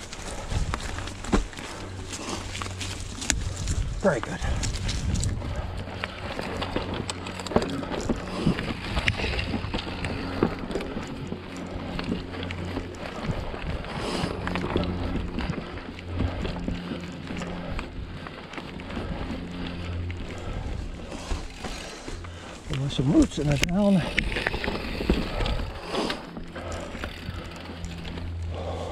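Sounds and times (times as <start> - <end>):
bike rattling over rocks: 0.0 - 28.9
freehub buzzing hum: 0.0 - 28.9.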